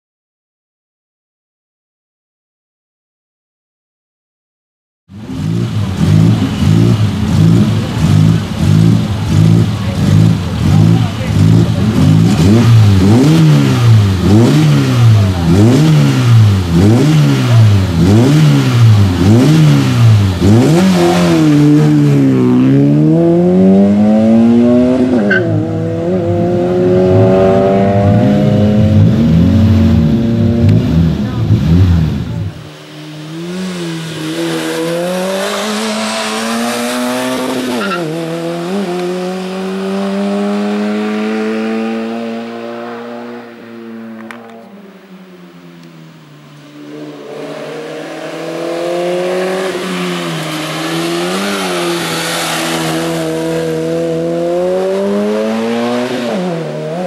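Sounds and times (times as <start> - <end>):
race car engine revving: 5.1 - 57.0.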